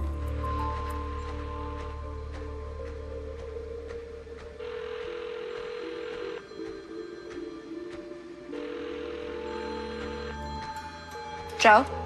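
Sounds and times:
music of held shifting tones: 0:00.0 - 0:12.0.

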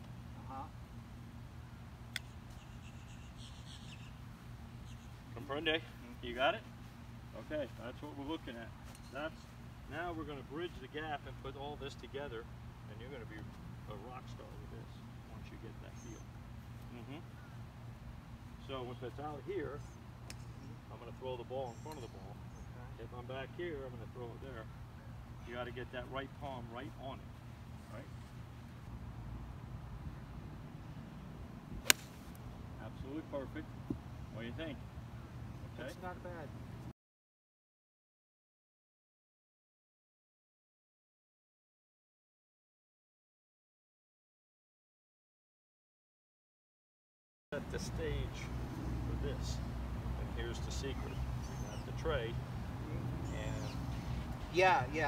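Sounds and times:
small bird chirping: 0:02.2 - 0:05.3, 0:21.6 - 0:22.8, 0:50.9 - 0:52.0
golf club striking ball: 0:31.8 - 0:32.4.

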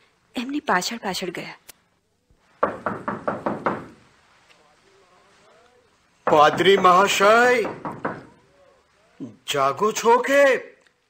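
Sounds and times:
knocking on a door: 0:02.6 - 0:04.0, 0:06.2 - 0:08.4.

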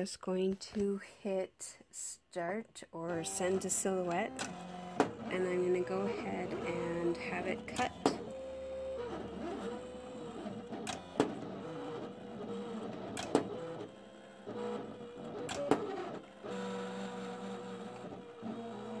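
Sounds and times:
cutting machine motors whining: 0:03.0 - 0:19.0.

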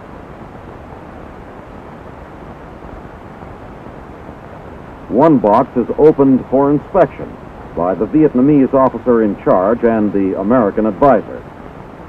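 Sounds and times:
old film soundtrack hiss: 0:00.0 - 0:12.0.

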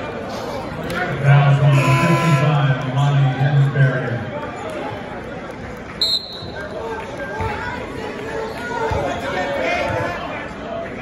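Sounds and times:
crowd chatter: 0:00.0 - 0:11.0
referee's whistle: 0:01.7 - 0:02.6, 0:06.0 - 0:06.6.

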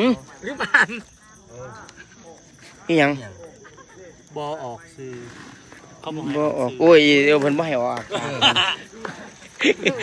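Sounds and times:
crickets chirring: 0:00.0 - 0:10.0
faint voices talking: 0:00.0 - 0:10.0.

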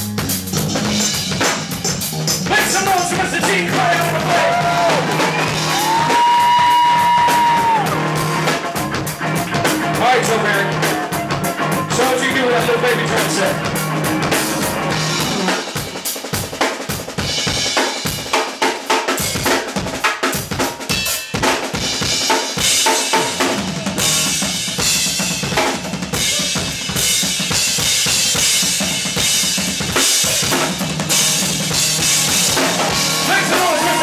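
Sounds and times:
band playing: 0:00.0 - 0:34.0
drum kit played hard: 0:00.0 - 0:34.0.

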